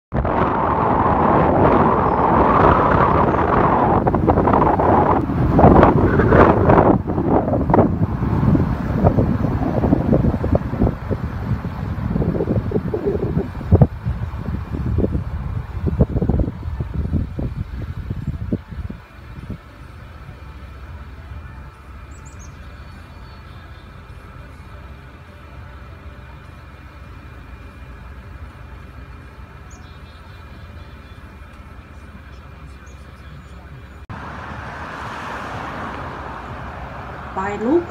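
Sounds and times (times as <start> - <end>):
car road and wind noise: 0.1 - 37.9
low car hum: 0.1 - 37.9.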